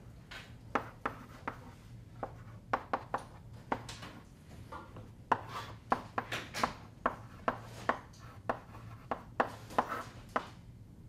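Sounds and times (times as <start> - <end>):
chalk scratching on blackboard: 0.7 - 3.1, 5.3 - 6.0, 7.0 - 10.2
chalk tapping on blackboard: 0.7 - 3.9, 5.3 - 10.6.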